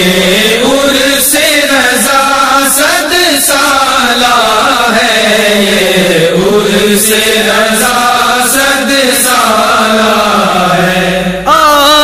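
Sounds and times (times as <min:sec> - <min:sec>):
voices chanting a drone: 0:00.0 - 0:12.0.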